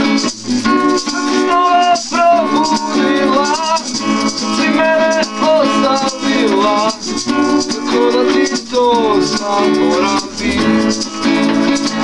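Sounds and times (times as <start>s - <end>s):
acoustic guitars strumming: 0.0s - 12.0s
hand shaker rattling: 0.0s - 12.0s.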